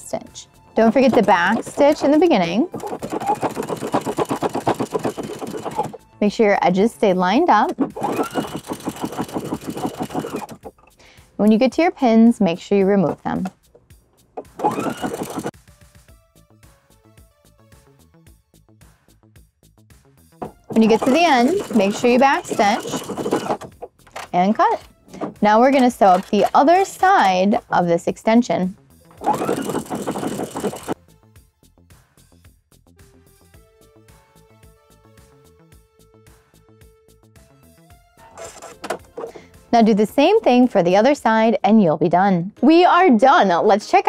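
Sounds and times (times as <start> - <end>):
sewing machine stitching: 0.8 - 6.0, 7.5 - 10.8, 13.0 - 13.5, 14.4 - 15.6, 20.4 - 27.8, 29.1 - 31.0, 38.2 - 39.4.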